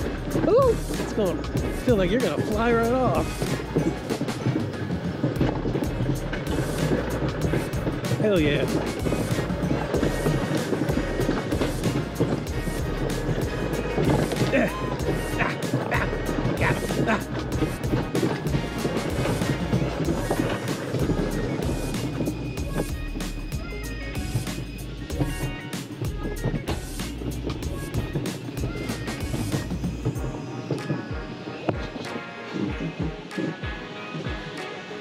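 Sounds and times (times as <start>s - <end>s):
background music: 0.0s - 35.0s
coaster wheels rumbling and clattering: 0.0s - 35.0s.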